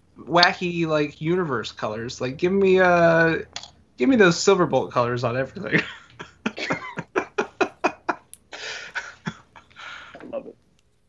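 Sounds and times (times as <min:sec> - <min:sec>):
man laughing: 0:05.6 - 0:10.4.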